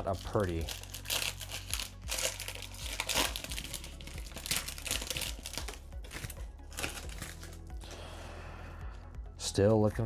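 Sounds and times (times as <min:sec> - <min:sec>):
foil wrapper crinkling and tearing: 0:00.0 - 0:07.7.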